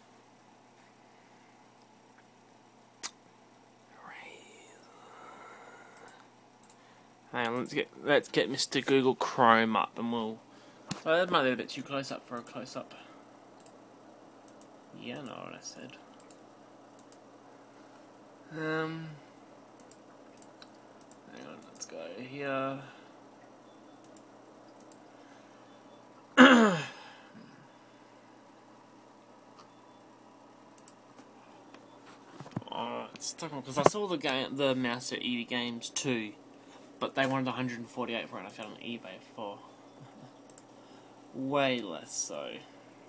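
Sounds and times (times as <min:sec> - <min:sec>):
faint whispering: 0:03.9 - 0:06.2
man sighing: 0:18.5 - 0:19.3, 0:26.4 - 0:27.7.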